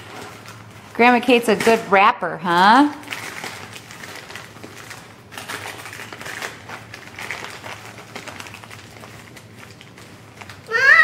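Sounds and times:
wrapping paper crinkling and tearing: 0:00.0 - 0:01.9, 0:02.8 - 0:11.0.

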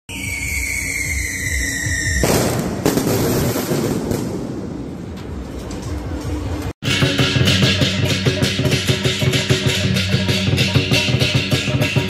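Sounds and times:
firework whistling: 0:00.1 - 0:04.2.

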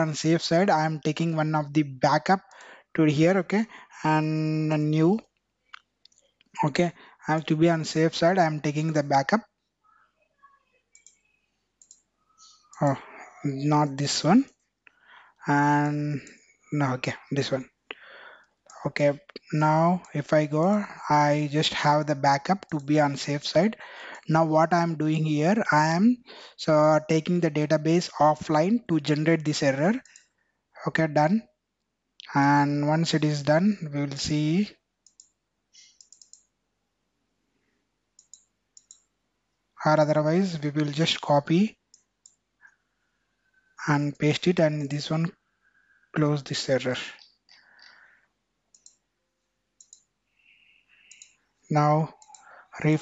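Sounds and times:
faint computer mouse clicks: 0:10.9 - 0:12.7, 0:35.0 - 0:36.5, 0:38.2 - 0:39.1, 0:48.7 - 0:49.0, 0:49.8 - 0:51.4.

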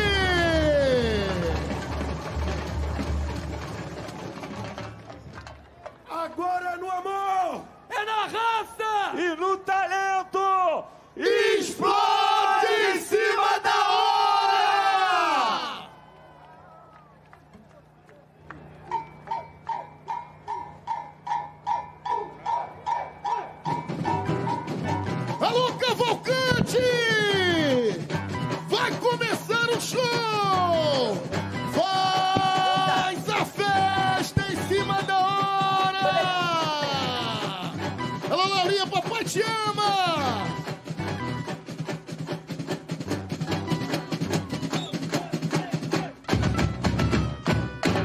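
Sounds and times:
deep surdo drums: 0:00.0 - 0:05.2, 0:26.4 - 0:48.0
samba drumming: 0:00.0 - 0:05.8, 0:19.3 - 0:48.0
high-pitched percussion strokes: 0:18.8 - 0:25.9.

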